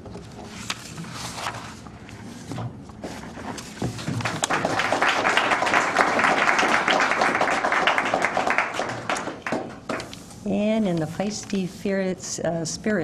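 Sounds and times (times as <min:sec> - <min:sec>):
audience applauding: 0:04.2 - 0:09.9.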